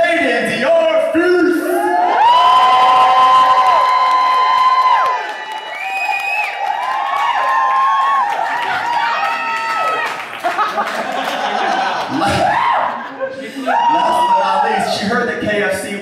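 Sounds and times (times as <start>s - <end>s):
people screaming: 1.7s - 10.2s, 12.1s - 15.0s
audience cheering: 1.7s - 14.9s.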